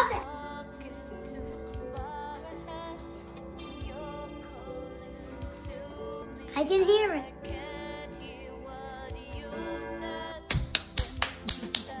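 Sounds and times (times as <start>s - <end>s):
music: 0.0s - 12.0s
hands clapping quickly: 10.5s - 12.0s.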